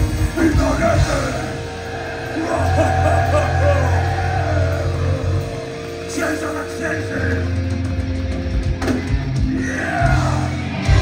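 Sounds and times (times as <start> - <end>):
live punk rock band: 0.0 - 11.0.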